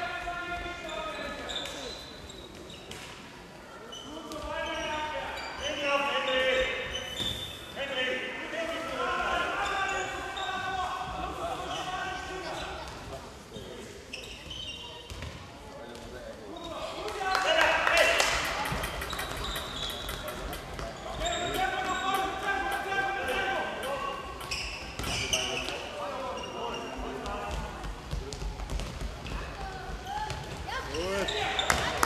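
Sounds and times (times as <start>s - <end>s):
ball bouncing on hall floor: 15.0s - 15.5s, 18.2s - 25.8s, 27.2s - 32.0s.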